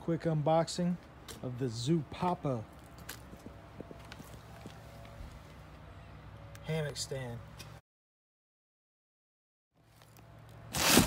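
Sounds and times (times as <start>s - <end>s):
footsteps on wooden deck: 2.8s - 5.8s.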